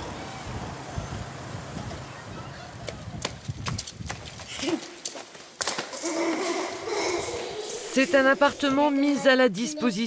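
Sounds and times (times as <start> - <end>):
children running on pavement: 1.7 - 9.2
child's voice: 6.0 - 10.0.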